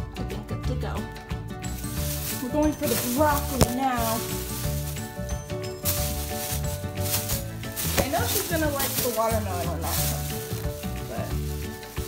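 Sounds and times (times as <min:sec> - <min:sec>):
background music with bass line: 0:00.0 - 0:12.0
plastic bag crinkling: 0:01.7 - 0:12.0.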